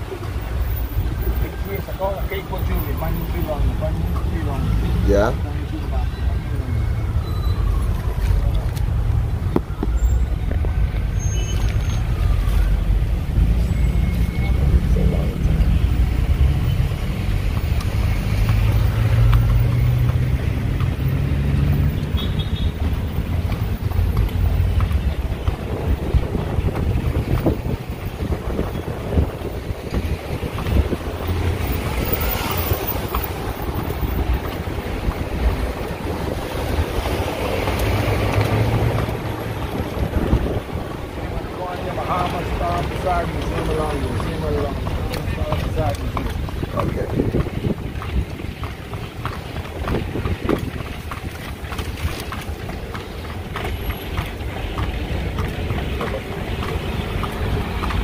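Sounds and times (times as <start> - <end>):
street traffic noise: 0.0 - 58.0
wind rumbling on microphone: 14.5 - 58.0.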